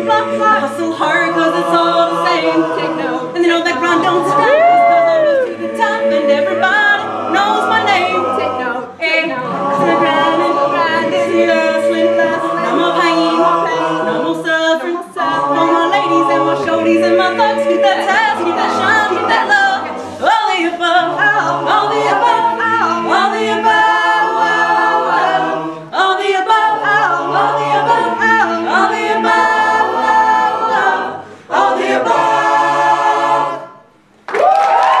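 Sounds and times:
a cappella group singing: 0.0 - 34.1
audience cheering: 4.4 - 5.5, 34.3 - 35.0.

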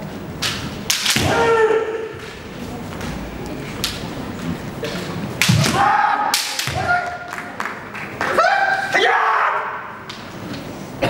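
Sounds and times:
bamboo sword strikes cracking: 0.4 - 1.5, 5.4 - 6.9
fencers shouting: 0.9 - 2.2, 5.4 - 7.3, 8.3 - 10.0.

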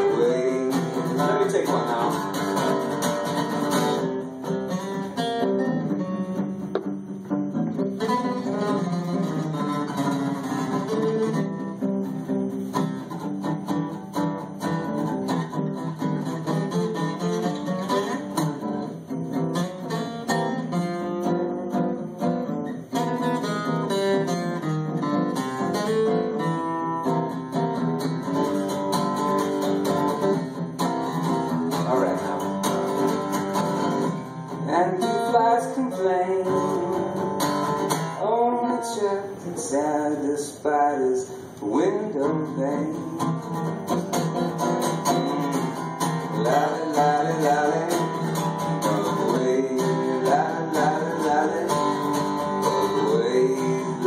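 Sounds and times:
person singing: 0.0 - 4.1, 31.7 - 33.0, 34.6 - 54.0
acoustic guitars playing: 0.0 - 54.0.

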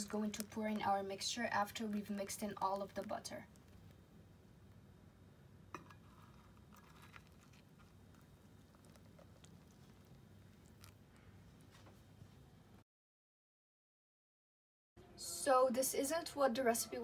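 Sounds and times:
custard pouring soft patter: 6.0 - 11.7.

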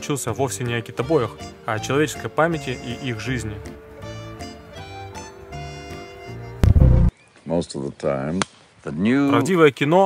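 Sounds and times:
heavy low hit: 6.6 - 7.1.

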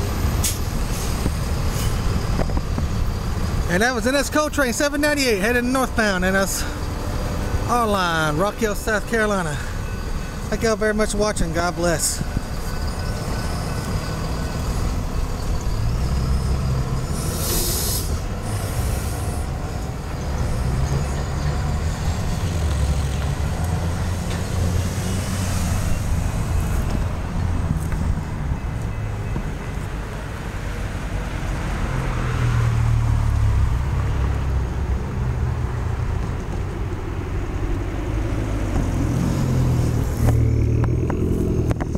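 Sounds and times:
diesel truck pulling away: 0.0 - 29.4, 30.0 - 41.9
cars passing: 0.0 - 41.9
air brake hisses: 17.1 - 19.5.

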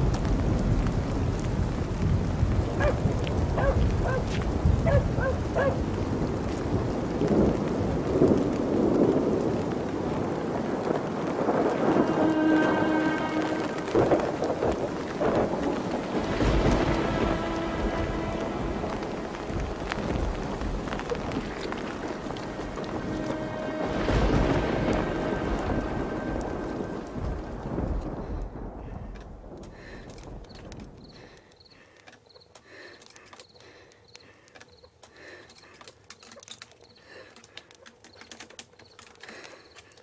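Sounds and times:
thunder rumbling: 0.0 - 31.8
steady rain: 0.0 - 40.0.

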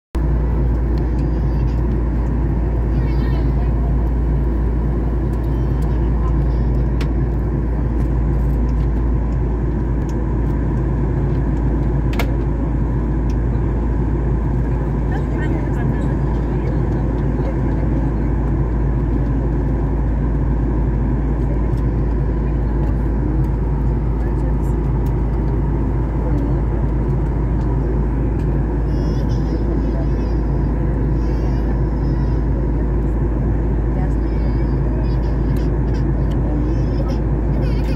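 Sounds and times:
airliner cabin rumble: 0.2 - 37.9.

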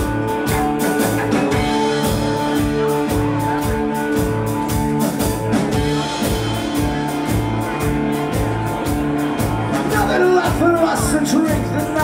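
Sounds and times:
live ska band playing: 0.0 - 12.0.

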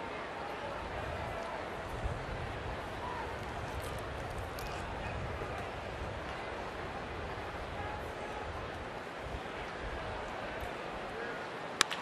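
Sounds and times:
crowd murmur: 0.0 - 12.0
bat cracking against baseball: 11.8 - 12.0.

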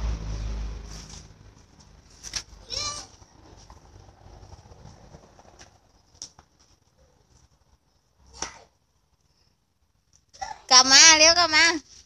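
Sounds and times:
bicycle rolling over concrete: 0.9 - 6.8.

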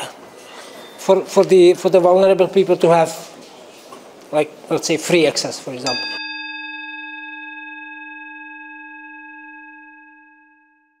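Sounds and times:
bell-like chime ringing: 5.8 - 11.0.

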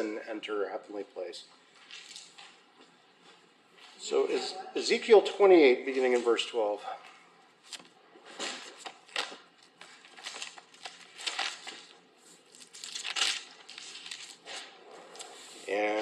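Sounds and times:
paper pages rustling: 7.6 - 16.0.

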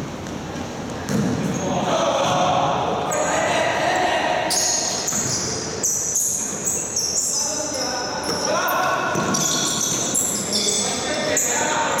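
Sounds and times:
sneakers squeaking: 0.0 - 2.5, 4.5 - 12.0.

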